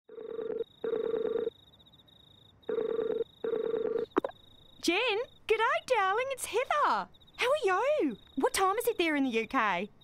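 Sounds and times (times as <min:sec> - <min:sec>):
telephone ringing tone: 0:00.1 - 0:01.5, 0:02.7 - 0:04.2.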